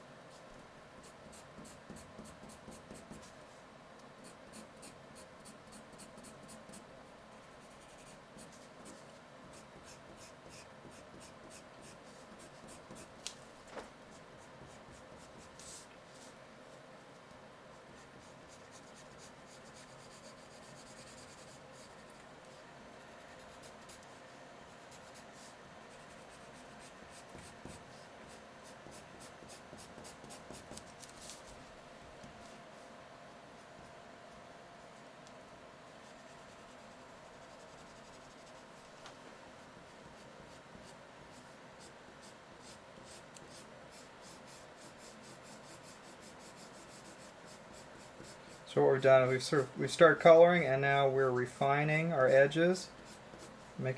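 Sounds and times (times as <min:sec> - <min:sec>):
colored pencil scratching paper: 0:01.0 - 0:03.4, 0:04.2 - 0:06.9, 0:07.5 - 0:13.1, 0:14.1 - 0:16.4, 0:17.8 - 0:22.2, 0:23.0 - 0:24.1, 0:24.7 - 0:31.5, 0:36.0 - 0:38.7, 0:40.0 - 0:48.7, 0:52.9 - 0:53.7.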